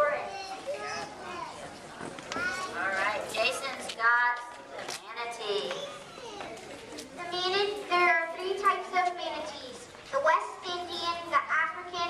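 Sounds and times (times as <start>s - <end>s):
young child talking: 0.0s - 1.7s, 7.2s - 12.0s
children's voices: 0.0s - 12.0s.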